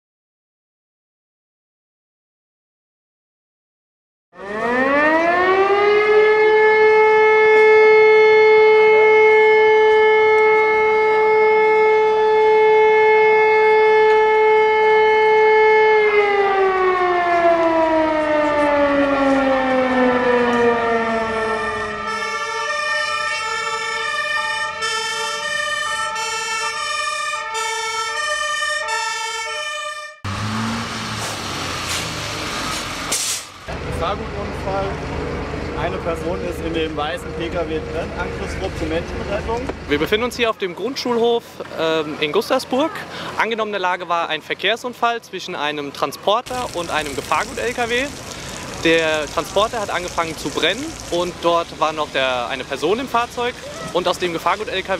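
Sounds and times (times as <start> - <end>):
fire engine two-tone horn: 4.4 - 30.5
alarm siren wailing: 4.4 - 33.1.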